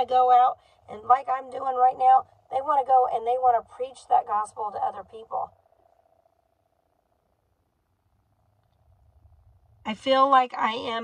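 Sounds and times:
woman speaking: 0:00.0 - 0:05.5, 0:09.9 - 0:11.0
faint steady tone: 0:00.0 - 0:11.0.

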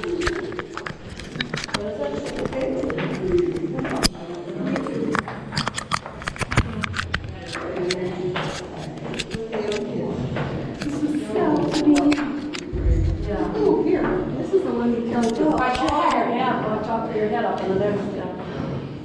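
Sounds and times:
indistinct voices talking: 0:00.0 - 0:17.5.

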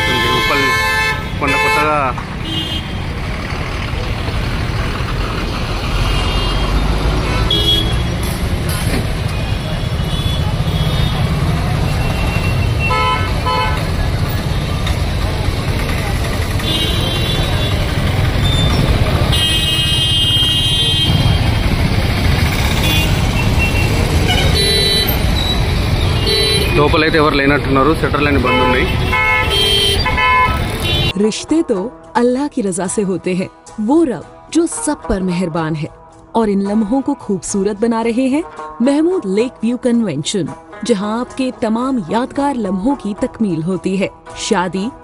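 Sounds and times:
vehicle horns honking: 0:00.0 - 0:03.2, 0:06.0 - 0:08.4, 0:09.2 - 0:14.8, 0:16.2 - 0:21.5, 0:22.5 - 0:31.2
traffic rumble: 0:00.0 - 0:32.1.

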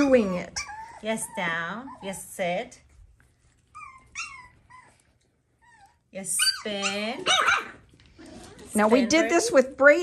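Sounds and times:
puppy whimpering: 0:00.0 - 0:02.6, 0:03.7 - 0:09.2.

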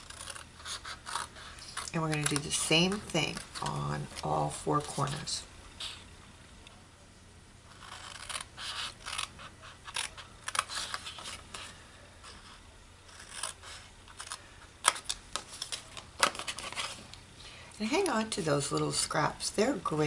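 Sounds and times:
scissors snipping cardstock: 0:00.0 - 0:05.3, 0:07.8 - 0:11.7.

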